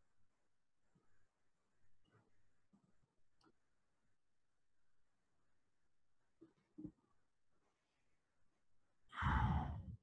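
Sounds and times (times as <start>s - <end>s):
breath rumble on microphone: 9.1s - 10.0s.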